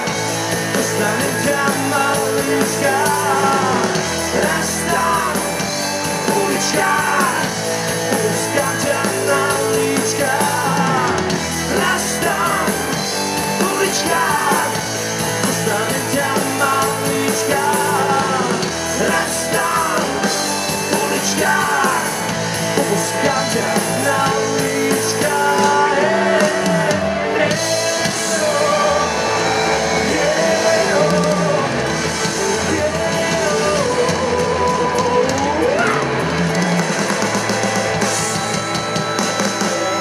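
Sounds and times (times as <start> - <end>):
rock band playing live: 0.0 - 40.0
person singing lead: 0.7 - 36.2.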